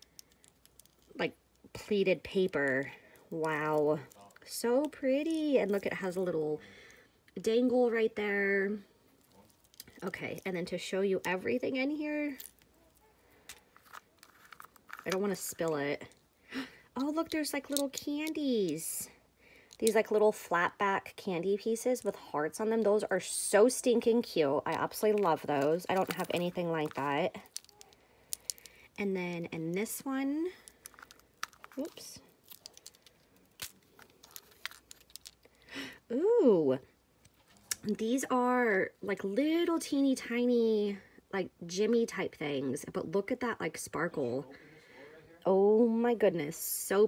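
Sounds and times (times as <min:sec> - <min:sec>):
crinkle paper rustling: 0:12.3 - 0:15.7, 0:24.7 - 0:28.8, 0:30.6 - 0:35.6.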